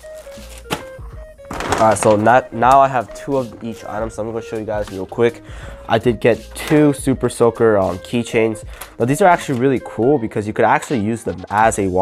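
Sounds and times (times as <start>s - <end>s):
plastic bag rustling: 0.0s - 5.2s
quiet background music: 0.0s - 12.0s.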